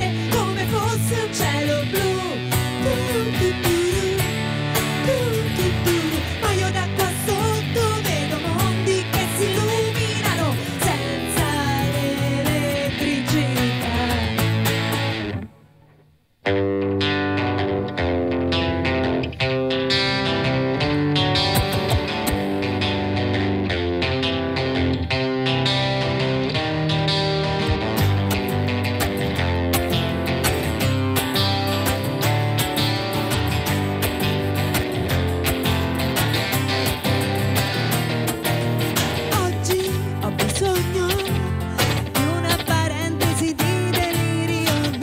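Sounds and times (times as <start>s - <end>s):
acoustic guitar: 0.0s - 45.0s
electric guitar: 0.0s - 45.0s.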